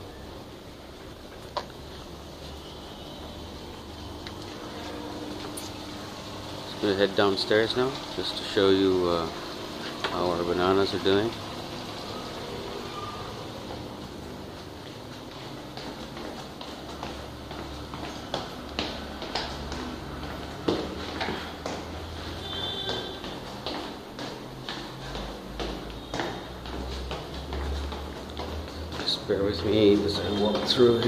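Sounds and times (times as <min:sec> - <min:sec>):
footsteps going down stairs: 0:00.0 - 0:31.0.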